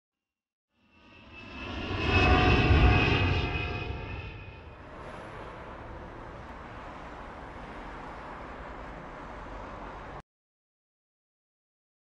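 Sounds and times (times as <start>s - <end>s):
aircraft passing over: 1.0s - 10.2s.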